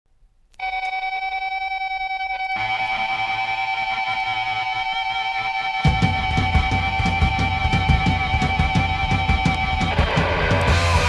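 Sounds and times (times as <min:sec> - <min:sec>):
pulsing high tone: 0:00.6 - 0:11.0.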